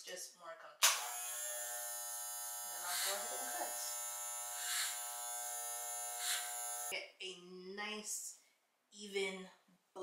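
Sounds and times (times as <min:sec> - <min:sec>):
electric hair clippers buzzing: 0:00.8 - 0:06.9.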